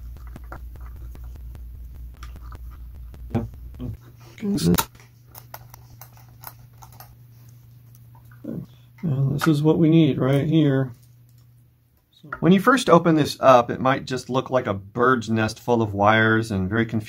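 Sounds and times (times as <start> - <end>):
low steady hum: 0.0 - 17.0.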